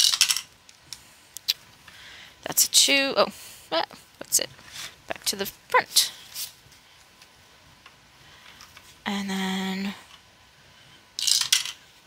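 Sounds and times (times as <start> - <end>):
die rattling down dice tower: 0.0 - 0.5, 11.2 - 11.8.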